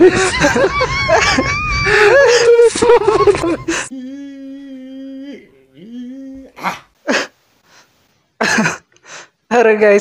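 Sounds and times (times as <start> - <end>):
man coughing: 8.4 - 8.9.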